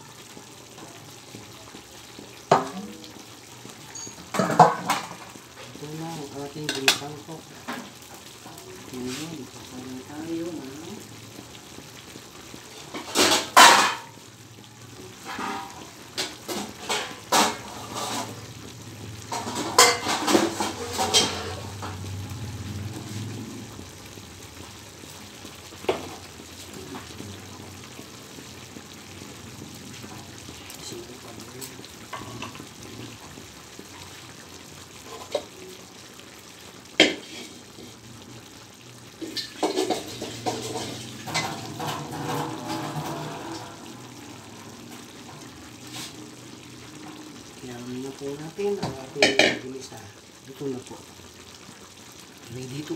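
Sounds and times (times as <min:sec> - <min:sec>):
steady low kitchen hiss: 0:00.0 - 0:52.9
metal cookware clinking: 0:03.8 - 0:05.3, 0:06.6 - 0:07.2, 0:12.9 - 0:14.1, 0:19.3 - 0:22.0, 0:39.2 - 0:44.3.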